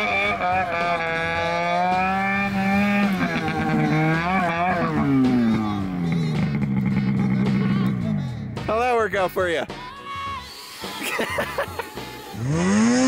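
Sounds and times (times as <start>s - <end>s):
snowmobile engine running: 0.0s - 8.3s, 11.0s - 13.0s.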